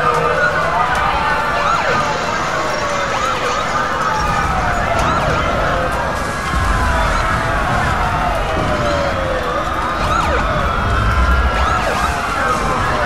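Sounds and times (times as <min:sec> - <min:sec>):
emergency vehicle sirens: 0:00.0 - 0:13.0.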